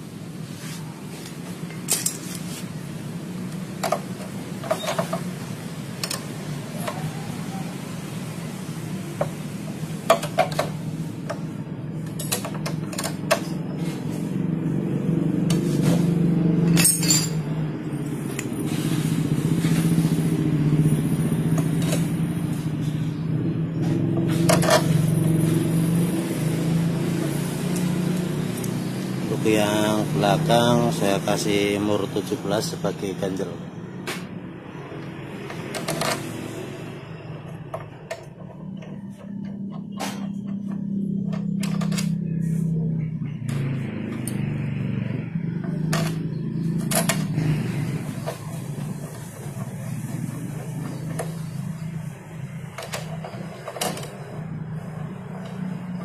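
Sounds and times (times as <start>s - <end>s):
metal tools clinking: 1.7s - 2.5s, 16.6s - 17.5s.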